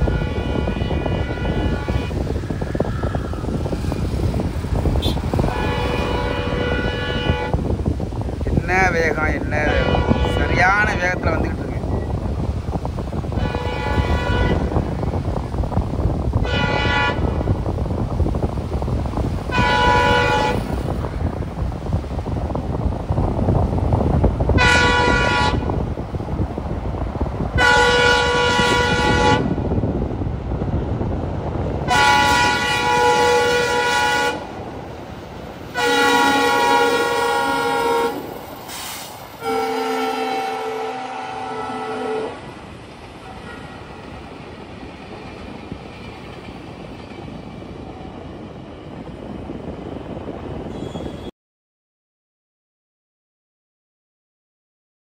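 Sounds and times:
train horn blasts: 0.0 - 3.4, 5.0 - 7.6, 9.6 - 10.9, 13.3 - 14.9, 16.4 - 17.4, 19.5 - 20.9, 24.6 - 25.8, 27.6 - 29.6, 31.8 - 34.5, 35.7 - 38.3, 39.4 - 42.4, 43.2 - 43.9.

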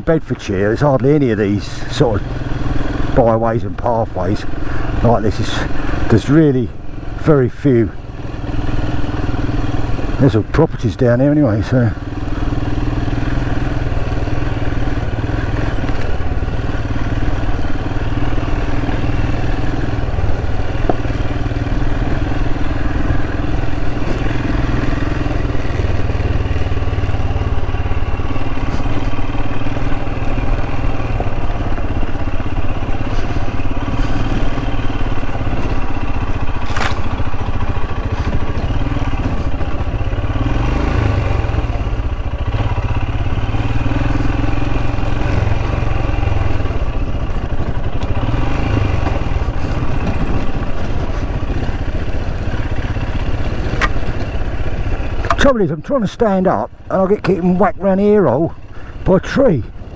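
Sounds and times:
motorcycle engine running: 0.0 - 59.9.

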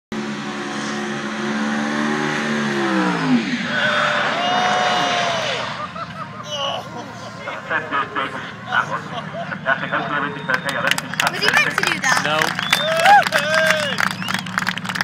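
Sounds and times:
car engine revving high: 0.1 - 15.0.

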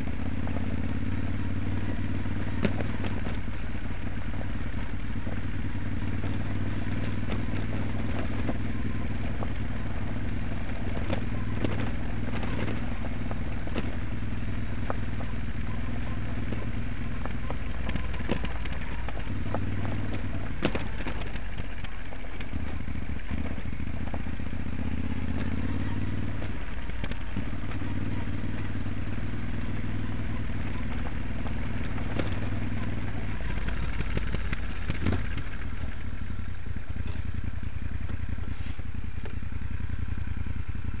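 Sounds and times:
motorcycle engine running: 0.0 - 41.0.

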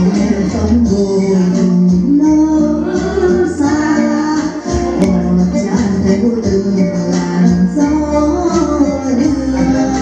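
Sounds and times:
musical accompaniment: 0.0 - 10.0.

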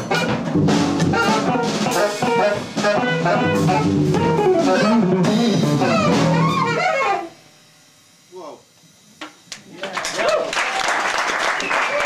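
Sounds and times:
jazz quartet playing: 0.0 - 7.4.

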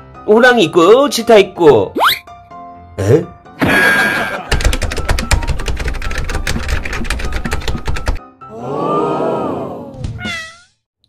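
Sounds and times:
cat meowing: 10.2 - 10.7.

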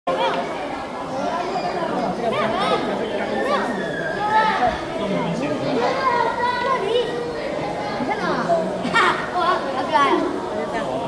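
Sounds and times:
people chattering in large hall: 0.1 - 11.0.

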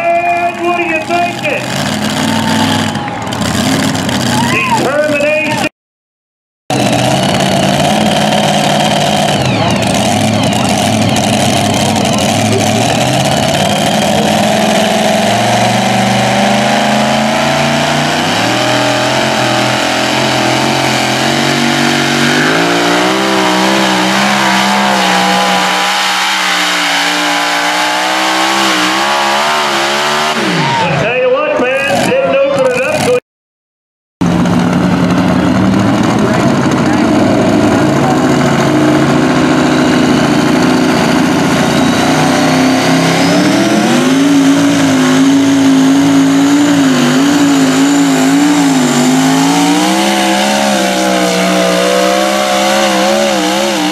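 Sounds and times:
truck engine at full throttle: 0.0 - 5.7, 6.7 - 33.2, 34.2 - 53.9.

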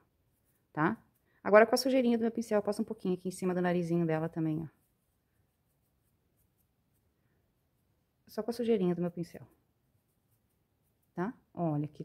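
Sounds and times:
soft brushing on yarn: 0.0 - 12.0.

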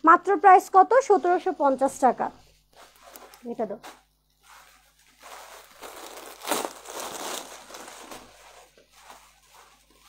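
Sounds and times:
woman's voice: 0.0 - 2.4, 3.4 - 3.9
fabric rustling: 0.2 - 10.0.

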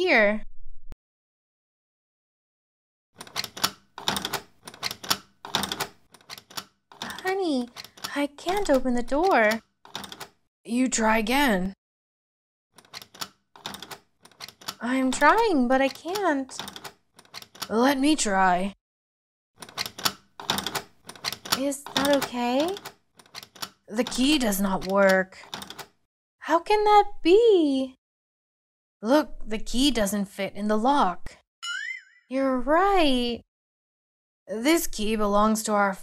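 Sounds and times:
metal key rattling in door lock: 3.2 - 10.4, 12.8 - 17.8, 19.6 - 26.0.

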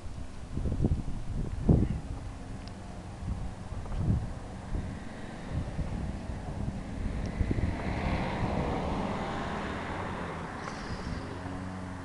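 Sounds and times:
broad rushing noise: 0.0 - 12.0
wind buffeting microphone: 0.0 - 12.0.

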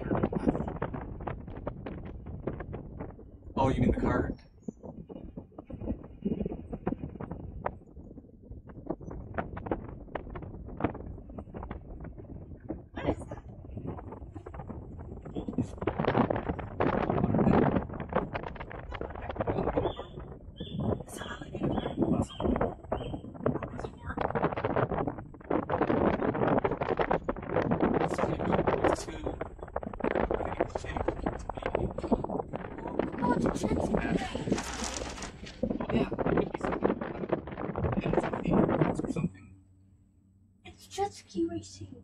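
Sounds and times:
people talking indistinctly: 0.0 - 0.7, 3.6 - 4.4, 13.0 - 13.4, 18.9 - 24.5, 28.0 - 39.5, 40.7 - 42.0
wind buffeting microphone: 0.0 - 39.8.

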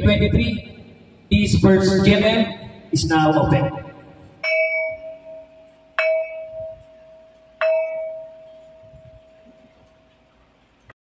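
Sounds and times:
bell ringing: 3.8 - 10.4.

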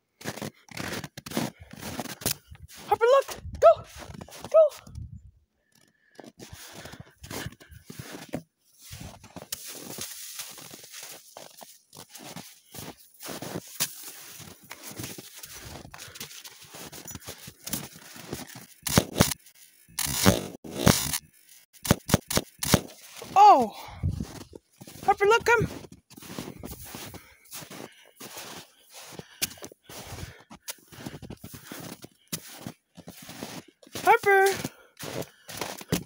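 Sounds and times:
crunching and scraping in snow: 0.2 - 4.6, 6.2 - 36.0.

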